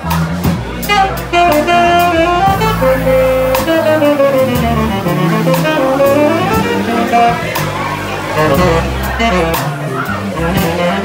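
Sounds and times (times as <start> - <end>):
drum kit with cymbal: 0.0 - 11.0
electric bass: 0.0 - 11.0
tenor saxophone melody: 0.8 - 11.0.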